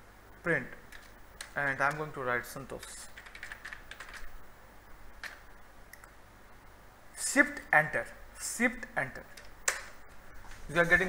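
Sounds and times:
computer keyboard keystrokes: 0.9 - 2.1, 3.2 - 4.3, 5.2 - 6.2, 9.3 - 10.0.

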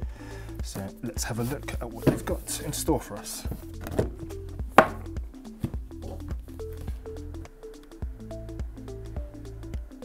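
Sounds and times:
background music with bass: 0.0 - 10.0
cardboard box knocking on table: 2.0 - 2.3, 4.8 - 5.0.

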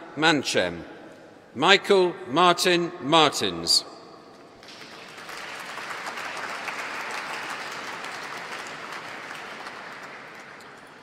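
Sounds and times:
audience clapping: 4.6 - 11.0.

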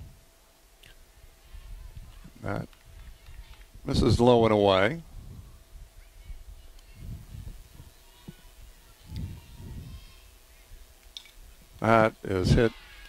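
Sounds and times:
distant murmuring voices: 0.3 - 13.0.

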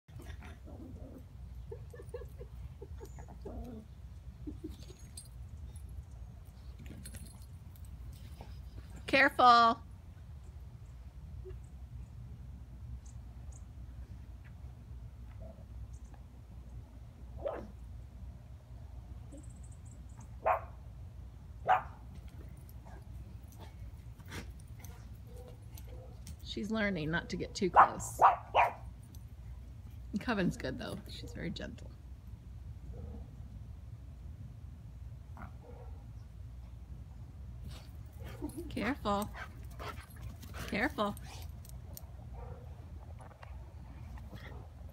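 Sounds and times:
dog whining or growling: 0.1 - 1.4, 3.0 - 5.2
puppy barking high-pitched: 17.4 - 17.7, 20.4 - 20.7, 21.6 - 22.0, 27.8 - 28.8.

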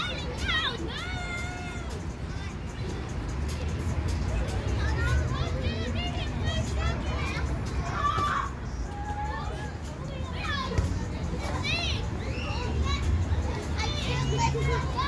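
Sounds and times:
children shouting and squealing: 0.0 - 15.0.

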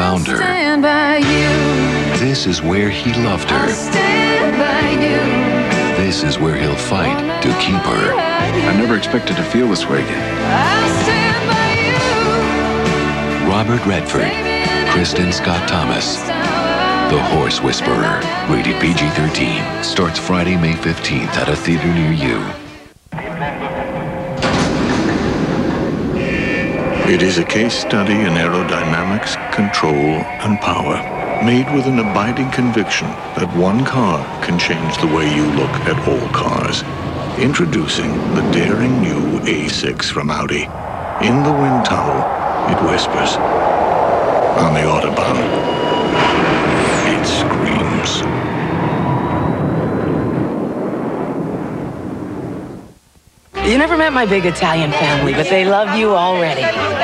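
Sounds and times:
high whine: 1.2 - 55.9
wind tunnel fan rumbling: 23.5 - 53.0
air rushing: 24.4 - 53.4.

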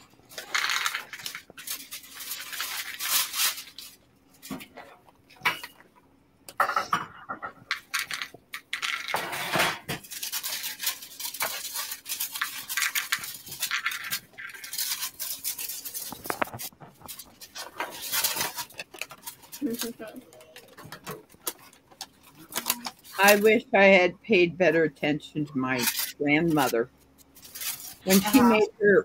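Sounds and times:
packaging crinkling: 0.0 - 4.6, 10.0 - 23.5, 25.8 - 28.6.

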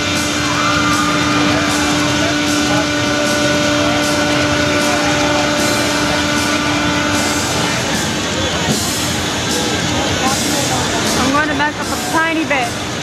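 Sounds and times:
loud fairground noise: 0.0 - 13.0
steady even drone: 0.0 - 13.0.

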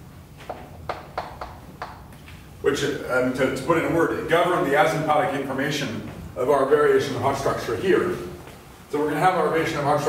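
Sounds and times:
chalk tapping on a blackboard: 0.4 - 2.1.

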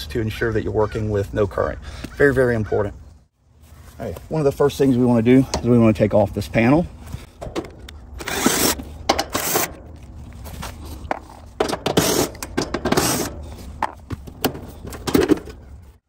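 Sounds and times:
cordless drill bursts: 8.2 - 9.7
metal scraping and rattling: 11.1 - 16.0.

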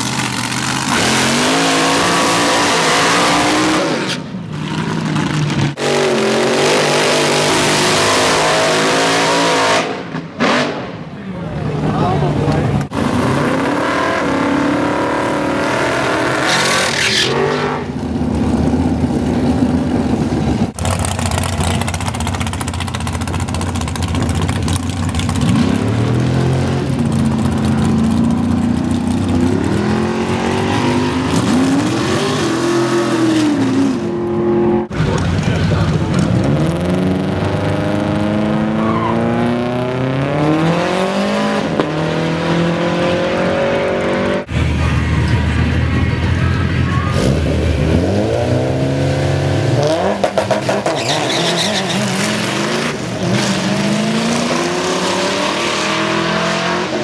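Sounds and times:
car tyre burnout: 12.5 - 34.1, 34.8 - 57.0
car accelerating hard: 24.2 - 44.6, 47.1 - 57.0.

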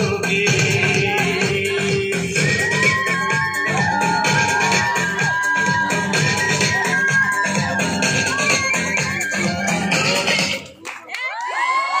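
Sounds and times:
loud dance music: 0.0 - 11.1
crowd cheering and whooping: 2.4 - 10.4, 11.0 - 12.0.

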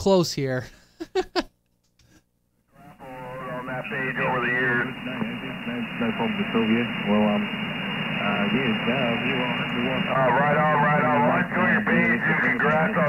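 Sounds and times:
man talking over radio: 2.8 - 13.0
radio static hiss: 2.8 - 13.0.

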